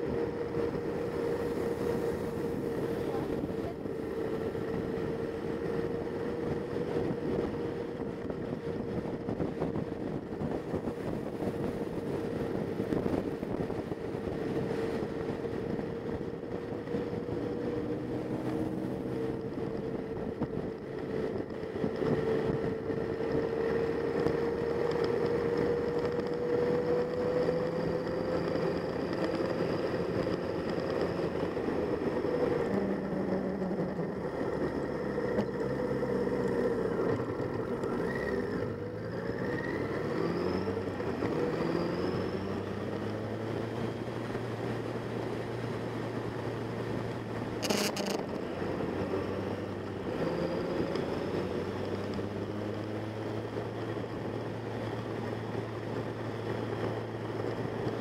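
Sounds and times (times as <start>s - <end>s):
motorcycle engine running: 0.0s - 58.0s
road and wind noise: 0.0s - 58.0s.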